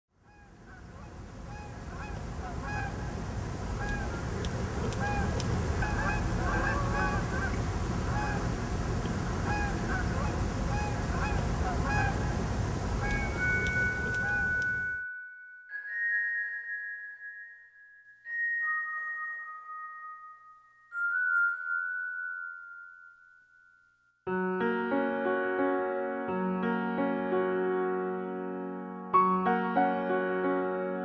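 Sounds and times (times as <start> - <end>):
birds calling: 0.3 - 14.9
steady low rumble: 0.6 - 14.9
held high tone: 13.1 - 24.0.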